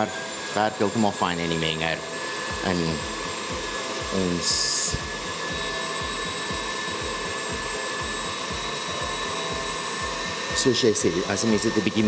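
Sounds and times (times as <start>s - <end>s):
stand mixer motor whine: 0.0s - 12.0s.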